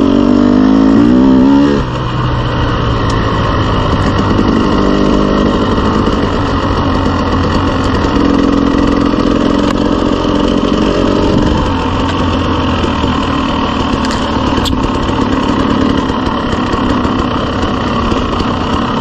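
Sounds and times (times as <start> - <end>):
dirt bike engine running: 0.0 - 19.0.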